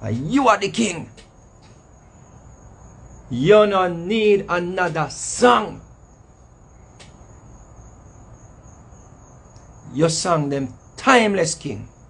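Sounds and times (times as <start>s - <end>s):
faint low room noise: 0.0s - 12.0s.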